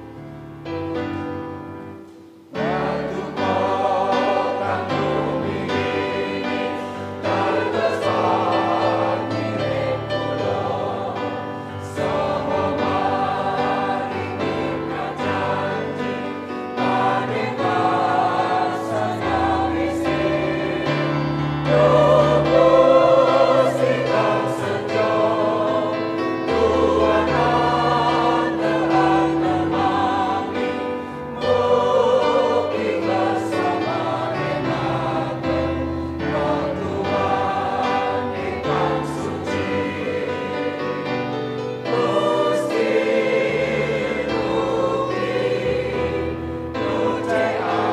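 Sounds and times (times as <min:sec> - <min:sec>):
choir singing a hymn: 0:00.0 - 0:47.9.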